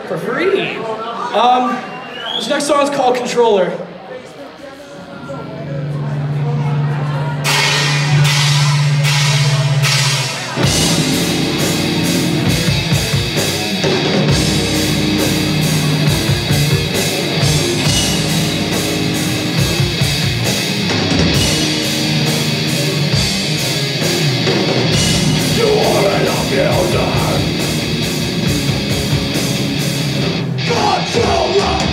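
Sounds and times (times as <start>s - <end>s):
distorted electric guitars: 5.8s - 31.9s
heavy metal band playing: 5.8s - 31.9s
sharp drum strikes: 7.5s - 13.6s, 24.5s - 29.4s.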